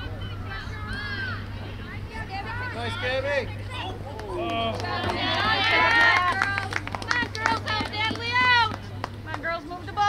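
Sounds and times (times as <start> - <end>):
crowd shouting and cheering: 2.5 - 6.6
sharp claps: 4.2 - 9.5.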